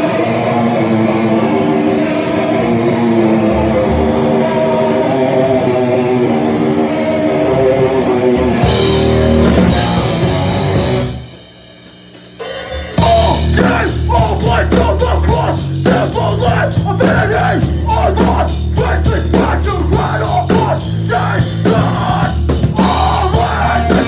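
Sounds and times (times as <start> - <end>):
electric guitar ringing: 0.0 - 11.6
punk band playing: 0.0 - 24.0.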